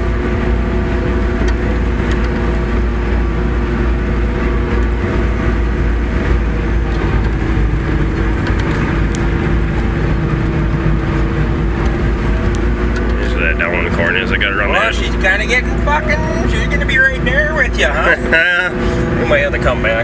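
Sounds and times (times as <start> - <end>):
harvester machine drone: 0.0 - 20.0.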